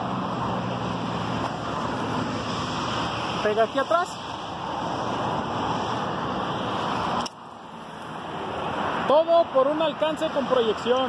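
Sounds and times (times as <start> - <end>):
road traffic rushing past: 0.0 - 11.0.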